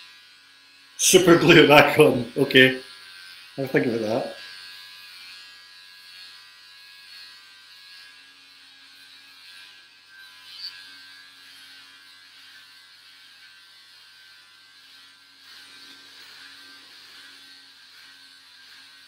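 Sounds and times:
electric hair clippers running: 0.0 - 19.0.

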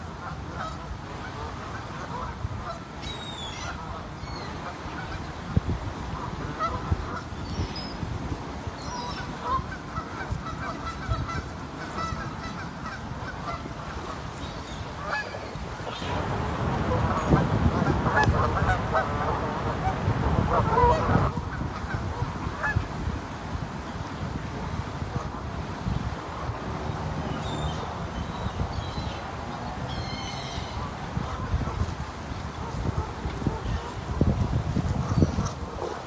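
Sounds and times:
geese honking: 0.2 - 5.5, 6.1 - 7.7, 8.8 - 22.8.

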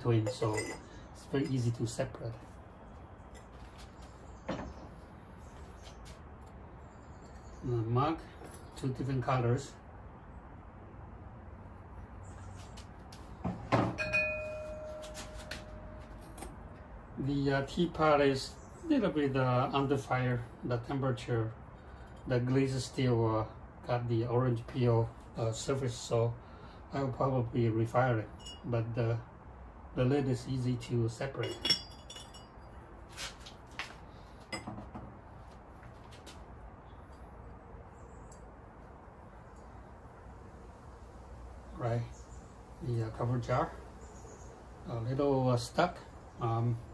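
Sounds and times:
pottery clinking and knocking: 0.0 - 1.6, 13.5 - 16.5, 31.4 - 32.6, 34.5 - 35.1
ceramic piece ringing: 0.2 - 1.6, 14.0 - 16.5, 28.4 - 28.7, 31.4 - 32.8.

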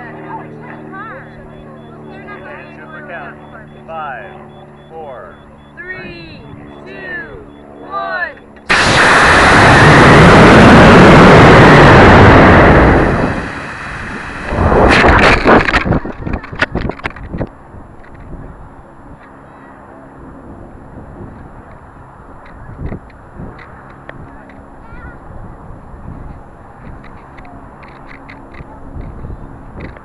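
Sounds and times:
rocket motor blast: 8.6 - 17.5
ejection charge burst: 8.7 - 16.3
rushing air: 8.7 - 16.3
wind noise: 8.7 - 19.2, 20.3 - 30.0.

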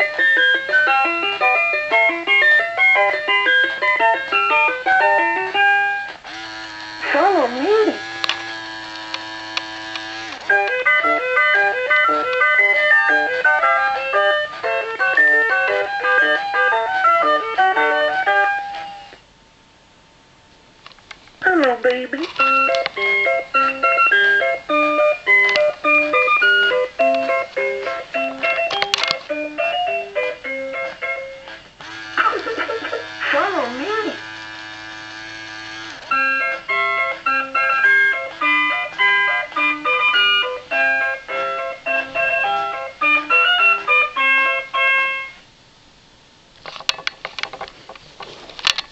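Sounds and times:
electronic toy tune: 22.4 - 30.6, 31.8 - 45.4.

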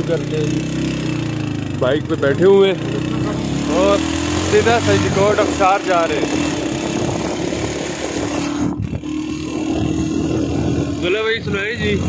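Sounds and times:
motorcycle engine hum: 0.0 - 12.0
wind and road noise: 0.0 - 12.0.

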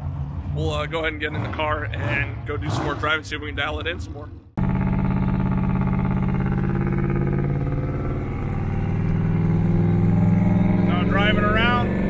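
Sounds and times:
engine drone inside car: 4.6 - 12.0.

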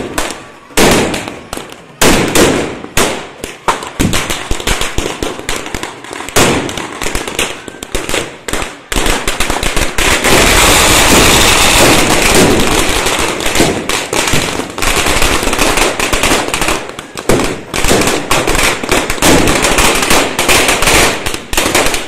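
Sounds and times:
firecrackers banging and crackling: 0.0 - 22.0.

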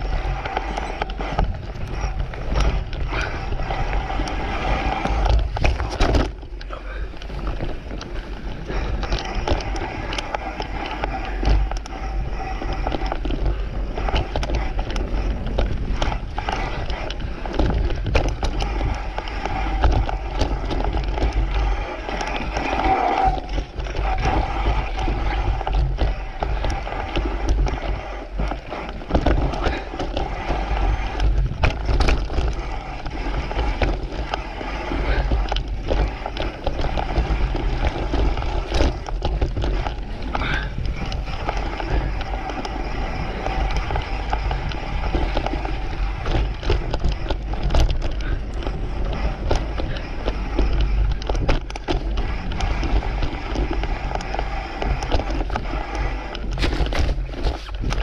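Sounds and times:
bike rattling over bumps: 0.0 - 58.0
tyres rolling over dirt: 0.0 - 58.0
wind on microphone: 0.0 - 58.0.

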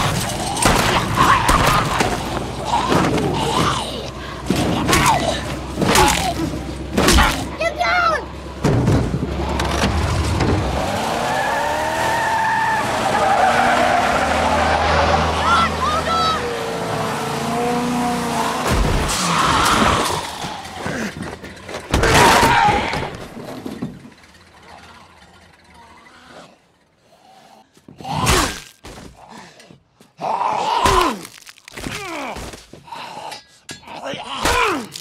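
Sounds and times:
growling voices: 0.0 - 7.7, 19.0 - 21.4, 24.7 - 28.4
tyres skidding and squealing: 0.0 - 35.0.

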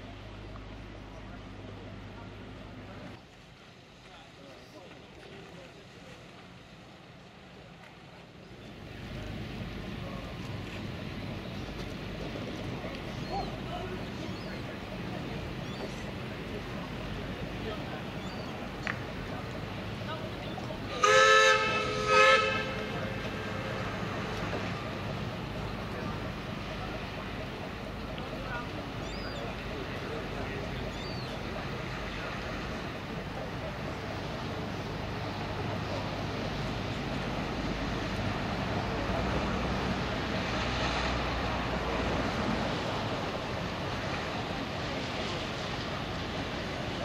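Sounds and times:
distant machinery and water wash: 0.0 - 47.0
steam whistle blasts: 20.9 - 22.8.

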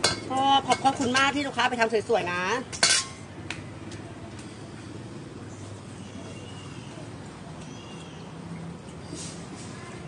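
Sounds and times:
cutlery and dishes clattering: 2.8 - 3.2.

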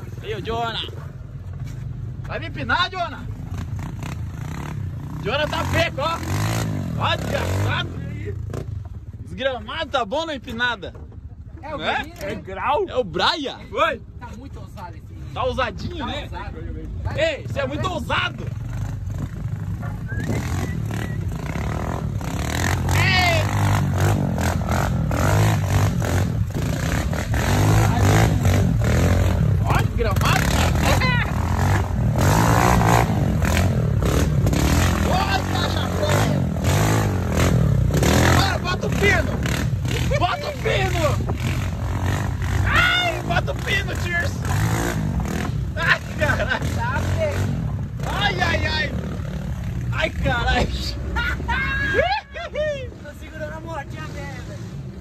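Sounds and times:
vehicle engine and road rumble: 0.0 - 55.0
voices calling out: 5.0 - 55.0
dirt bike engine running: 15.4 - 51.5.

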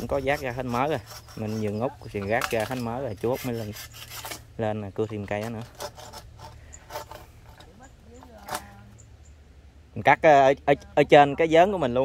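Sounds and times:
knocks and scrapes on wood: 0.0 - 4.4, 5.0 - 7.8.

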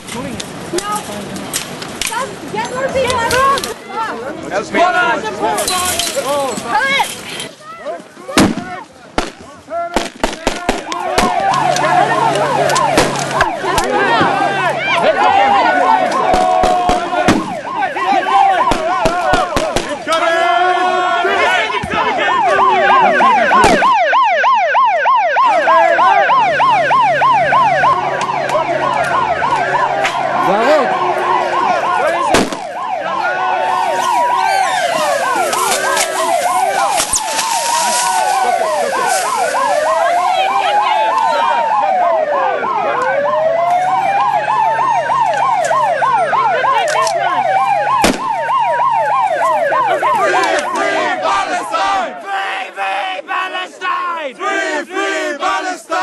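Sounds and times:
sirens yelping and wailing: 0.0 - 56.0
sharp bangs: 8.3 - 11.9, 12.6 - 14.4, 16.2 - 20.1, 23.5 - 24.0, 32.1 - 33.0, 47.9 - 48.6.

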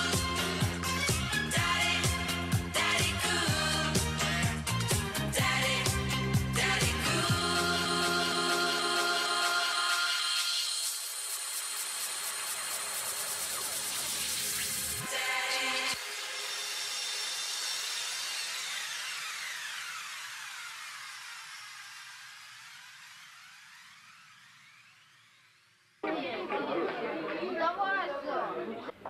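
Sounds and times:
electronic hissing whoosh: 10.6 - 26.0.

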